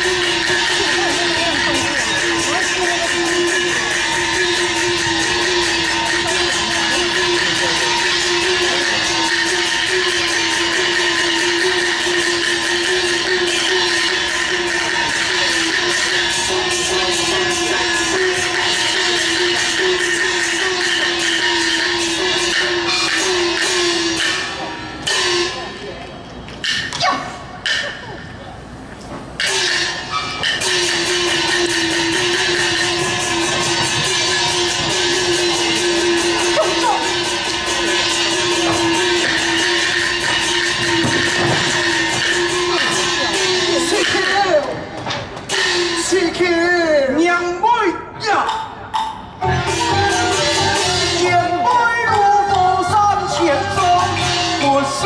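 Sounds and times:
traditional orchestra playing: 0.0s - 26.0s, 29.4s - 46.4s, 49.4s - 55.0s.

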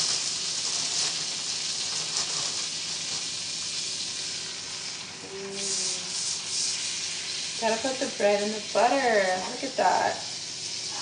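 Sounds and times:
butter sizzling in a frying pan: 0.0s - 11.0s.

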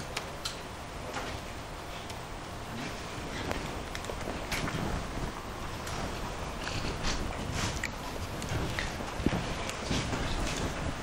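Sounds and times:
room noise hum: 0.0s - 11.0s.

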